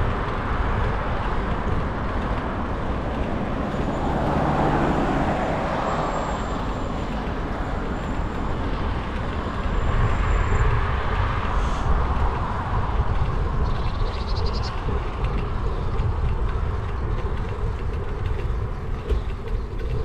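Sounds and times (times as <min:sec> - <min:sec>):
road traffic passing: 0:00.0 - 0:20.0
wind rumble on microphone: 0:00.0 - 0:20.0.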